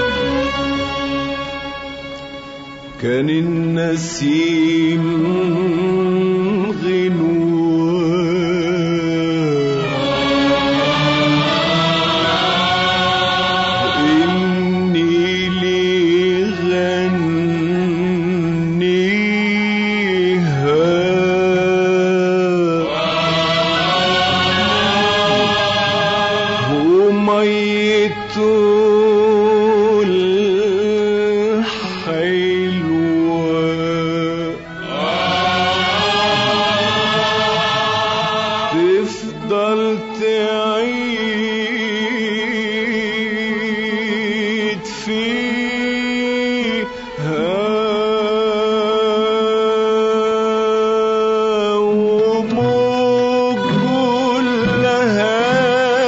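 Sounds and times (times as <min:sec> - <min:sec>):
orchestra playing: 0:00.0 - 0:49.2, 0:52.2 - 0:56.0
chorus singing held notes: 0:09.4 - 0:16.0, 0:22.4 - 0:28.3, 0:34.4 - 0:40.2, 0:52.2 - 0:56.0.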